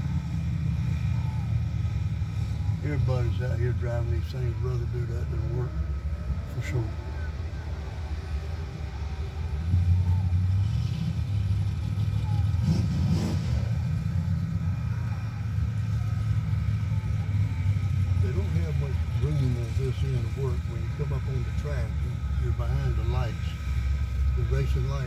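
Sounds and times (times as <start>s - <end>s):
engine rumble inside vehicle: 0.0s - 25.0s.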